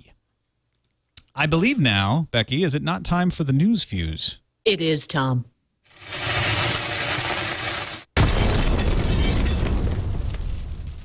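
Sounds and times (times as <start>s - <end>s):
lit fuse hissing: 5.9s - 8.6s
loud explosion: 8.2s - 11.0s.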